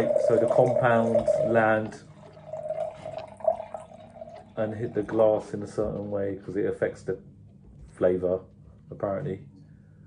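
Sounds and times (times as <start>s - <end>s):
wine pouring into a glass: 0.0s - 5.4s.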